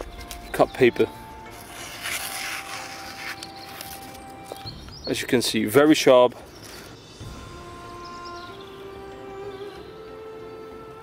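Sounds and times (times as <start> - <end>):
paper rustling: 1.5 - 4.6, 6.5 - 6.9
knife slicing paper hiss: 1.6 - 4.2.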